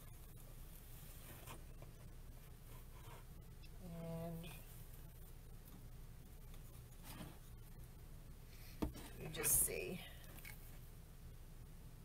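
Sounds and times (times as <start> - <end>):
woman whispering: 3.8 - 4.7, 9.2 - 10.3.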